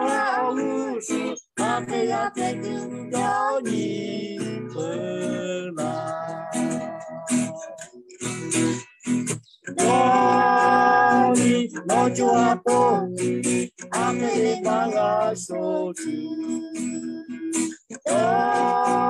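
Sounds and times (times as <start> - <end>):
man and woman singing together: 0.0 - 7.8, 9.7 - 19.0
acoustic guitar strumming: 0.0 - 19.0.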